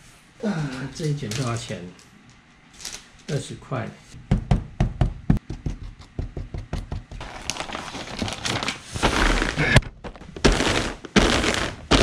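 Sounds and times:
paper rustling and crinkling: 7.2s - 12.0s.

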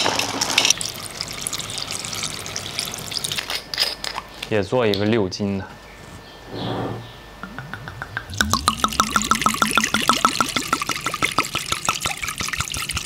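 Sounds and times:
liquid glugging from bottle: 7.5s - 13.0s.

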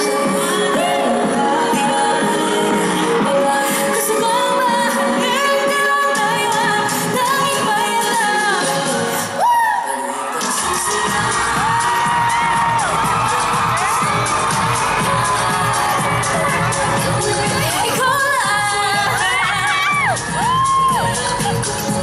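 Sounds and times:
woman singing over backing track: 0.0s - 22.0s
heavy bass beat: 10.6s - 22.0s.

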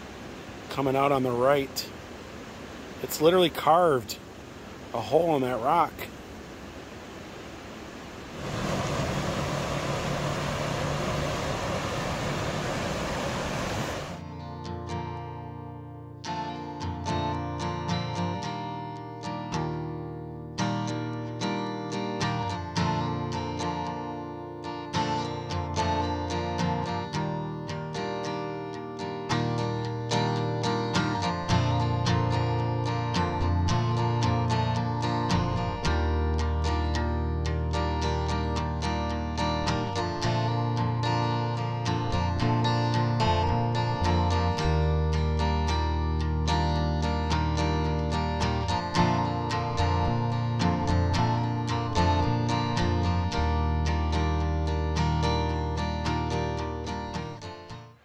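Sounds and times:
river water rushing: 0.0s - 14.2s
acoustic guitar music: 8.4s - 58.0s.

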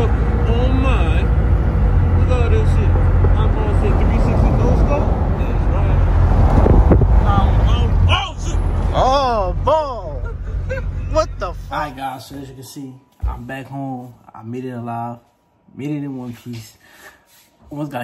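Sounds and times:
road and engine rumble: 0.0s - 12.1s.

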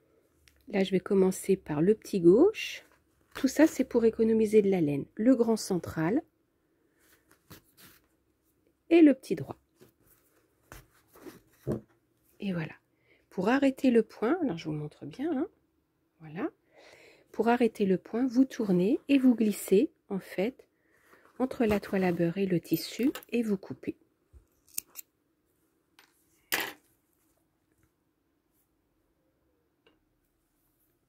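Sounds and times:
fabric rustling: 6.9s - 8.6s, 9.7s - 11.9s
small scissors snipping yarn: 24.6s - 25.1s.

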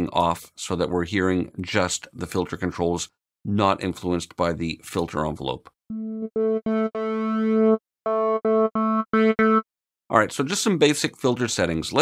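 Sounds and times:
synthesizer repeated notes: 5.9s - 9.7s.

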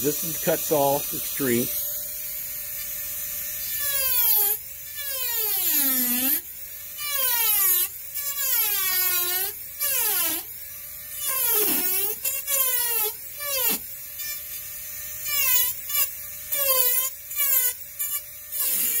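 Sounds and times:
rotary carving tool whining: 0.0s - 19.0s.

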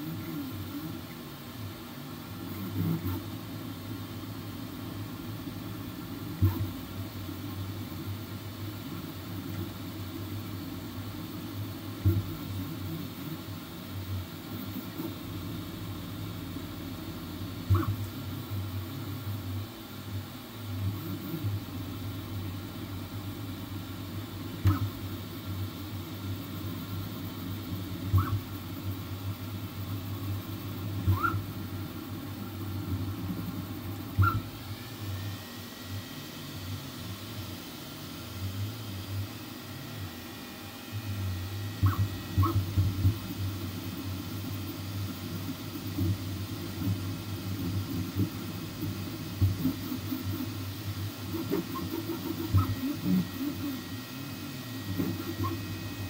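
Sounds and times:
printer motors and fans humming: 0.0s - 56.0s.

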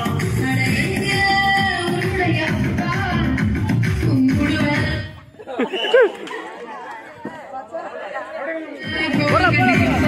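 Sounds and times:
people chatting and calling out: 0.0s - 10.0s.

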